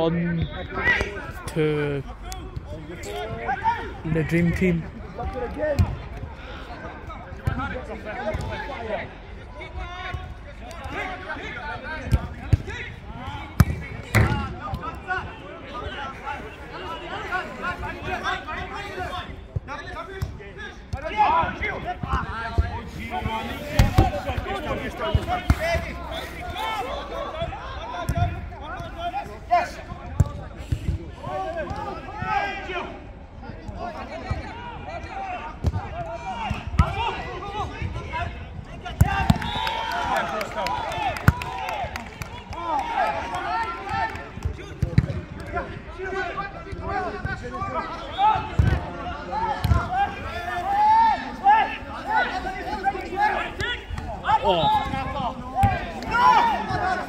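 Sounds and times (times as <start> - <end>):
players calling and shouting: 0.0 - 57.0.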